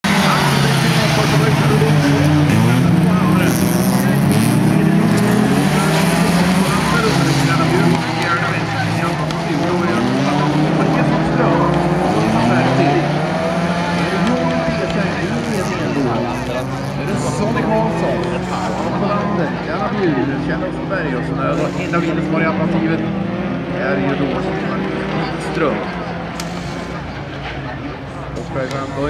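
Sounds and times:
race car engines revving: 0:00.0 - 0:29.0.

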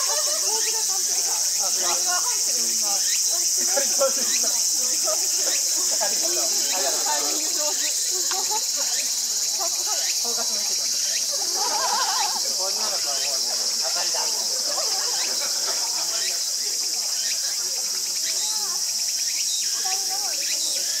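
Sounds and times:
insects chirring: 0:00.0 - 0:21.0.

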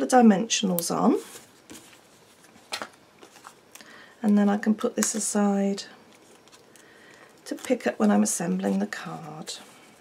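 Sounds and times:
paper card handling: 0:06.1 - 0:09.6.

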